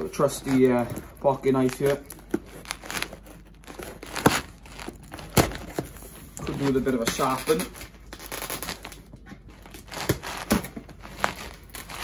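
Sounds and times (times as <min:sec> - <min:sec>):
packing tape tearing: 0:00.0 - 0:12.0
knife scraping cardboard box: 0:01.8 - 0:05.9.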